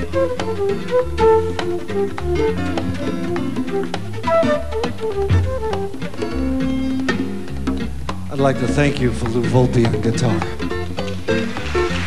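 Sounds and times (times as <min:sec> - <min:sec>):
electric guitar melody: 0:00.0 - 0:12.0
hand drum rhythm: 0:00.0 - 0:12.0.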